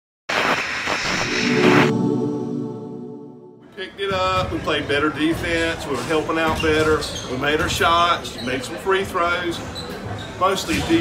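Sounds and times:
loud rushing burst of noise: 0.3 - 3.8
held ringing chord: 1.6 - 3.9.

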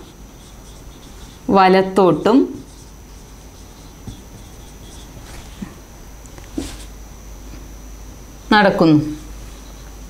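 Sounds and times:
marker squeaks: 0.0 - 1.5, 2.5 - 5.7
marker scratching on whiteboard: 0.0 - 1.6, 2.4 - 5.8, 6.4 - 6.9.

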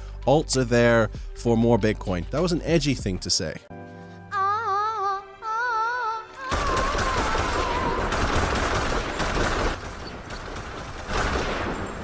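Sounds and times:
rapid rifle fire: 6.5 - 12.0.

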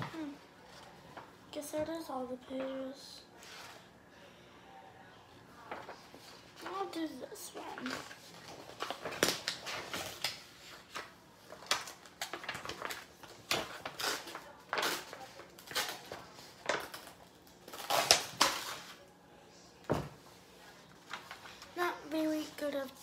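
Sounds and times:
paper rustling and crinkling: 5.6 - 19.0, 20.6 - 22.6.

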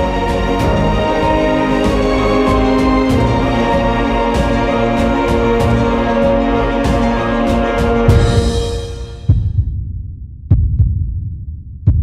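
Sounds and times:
heartbeat thumps: 0.0 - 12.0.

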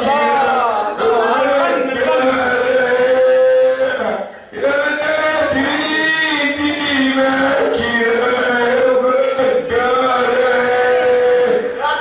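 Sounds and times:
man singing into microphone: 0.0 - 12.0.

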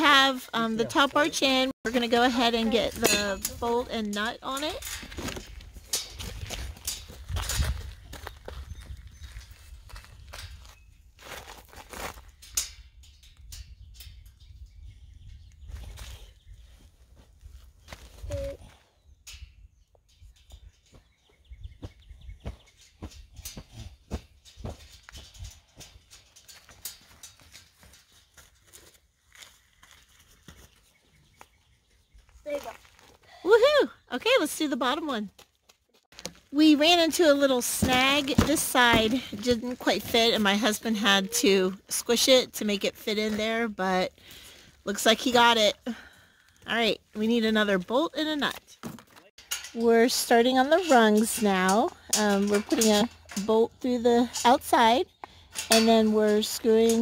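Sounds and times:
wind noise on microphone: 4.7 - 11.2, 12.2 - 26.1.

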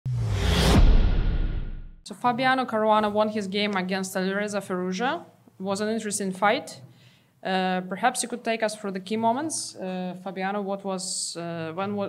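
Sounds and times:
whoosh: 0.0 - 2.0
deep low boom: 0.1 - 2.0.

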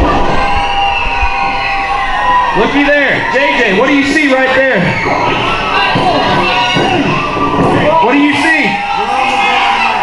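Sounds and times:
crowd shouting and cheering: 0.0 - 10.0
long drawn-out yells: 0.0 - 10.0.

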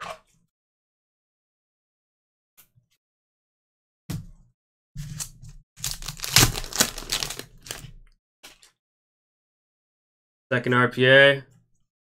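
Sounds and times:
foil pack crinkling: 5.8 - 8.0.

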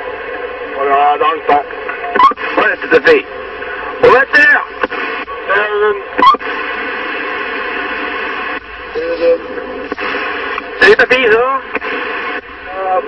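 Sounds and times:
radio static hiss: 0.0 - 13.0
faint warbling radio voices: 0.6 - 13.0.

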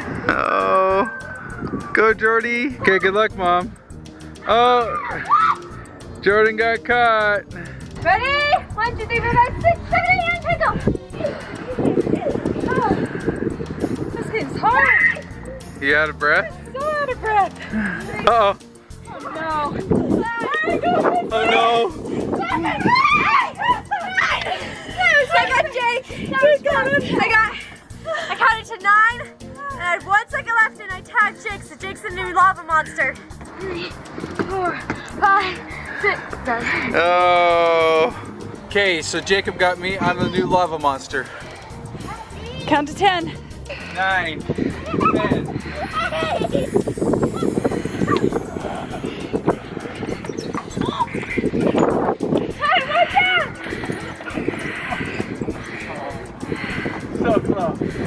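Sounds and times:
children squealing and laughing: 0.1 - 1.9, 4.8 - 5.8, 14.5 - 15.8, 20.2 - 28.6, 44.6 - 57.0.

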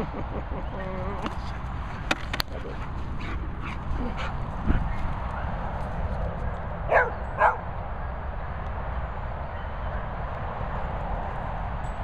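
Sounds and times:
dog barking: 6.9 - 7.6.

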